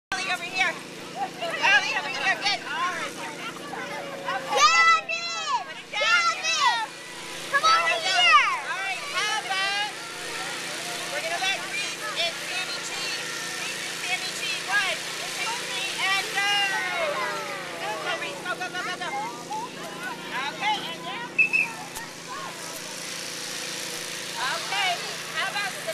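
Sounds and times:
adult voices: 0.1s - 25.9s
steady motor hum: 0.1s - 25.9s
children chattering and squealing: 0.2s - 25.9s.

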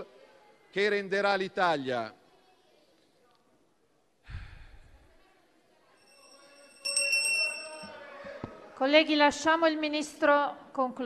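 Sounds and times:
hand bell rung rapidly: 6.0s - 8.1s.

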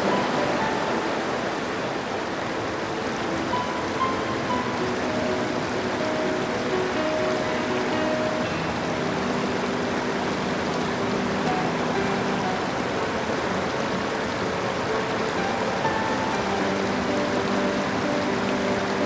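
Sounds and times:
river rushing over rocks: 0.0s - 19.0s
soft background music: 0.0s - 19.0s.

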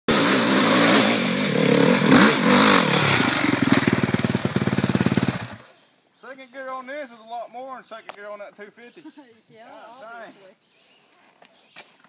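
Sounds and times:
dirt bike engine revving: 0.1s - 5.7s.

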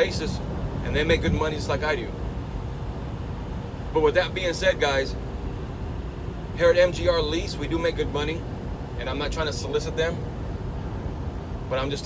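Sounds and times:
road noise: 0.0s - 12.0s
truck engine rumble: 0.0s - 12.0s.

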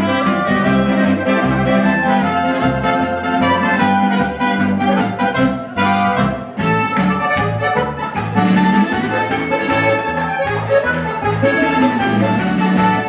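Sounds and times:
trumpet: 0.0s - 7.9s
accordion: 0.0s - 13.0s
clarinet: 0.0s - 13.0s
folk band playing a polka: 0.0s - 13.0s.

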